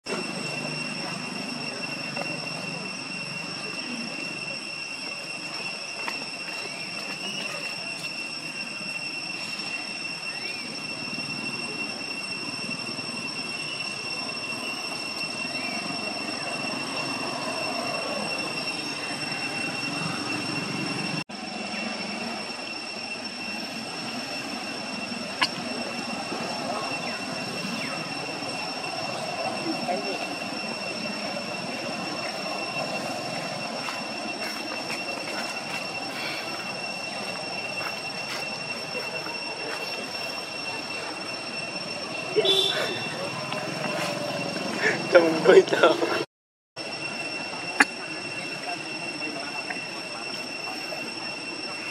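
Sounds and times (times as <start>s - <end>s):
high-pitched whine: 0.0s - 51.9s.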